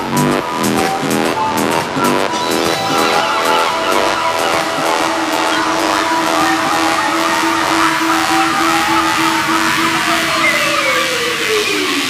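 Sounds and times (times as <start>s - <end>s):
repeating synth note: 0.0s - 12.0s
dense noisy wash: 0.4s - 12.0s.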